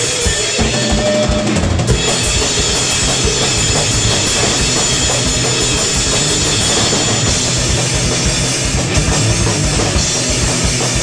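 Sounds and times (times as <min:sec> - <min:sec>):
cymbals: 0:00.0 - 0:11.0
electric guitar: 0:00.0 - 0:11.0
rapid kick drum beats: 0:00.0 - 0:11.0.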